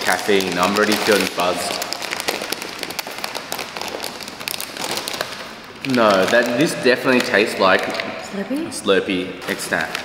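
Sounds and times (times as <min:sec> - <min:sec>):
foil snack bag crinkling: 0:00.0 - 0:08.1, 0:09.4 - 0:10.0.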